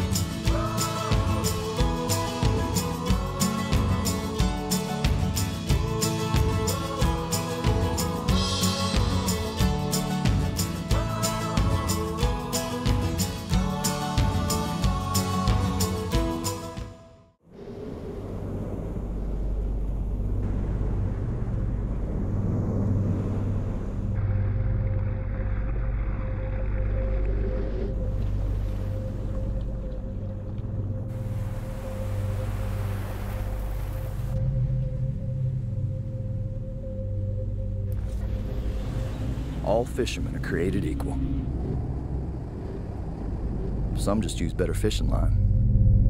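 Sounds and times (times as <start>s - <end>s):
faint wash of noise: 17.4s - 25.3s, 31.1s - 35.5s, 37.9s - 45.4s
low rumbling drone: 17.4s - 46.0s.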